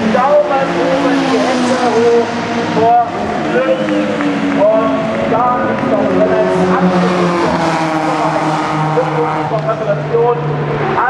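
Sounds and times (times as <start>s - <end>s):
racing car engines passing: 0.0s - 11.0s.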